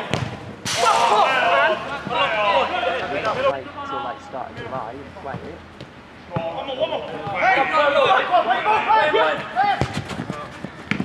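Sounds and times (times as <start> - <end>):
ball being kicked: 0.0 - 0.4
players shouting: 0.0 - 5.3, 6.3 - 11.0.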